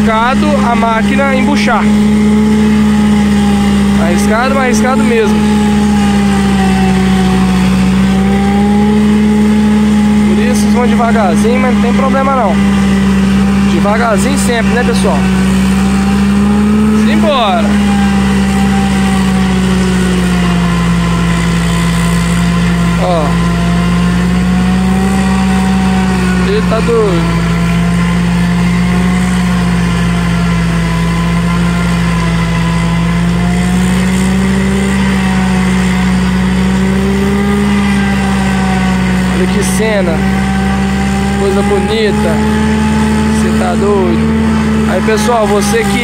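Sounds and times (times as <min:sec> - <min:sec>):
tractor engine droning under load: 0:00.0 - 0:46.0.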